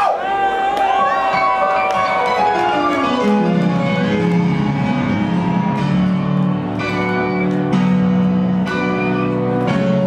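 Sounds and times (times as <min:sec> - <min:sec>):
electronic dance music: 0:01.7 - 0:07.6.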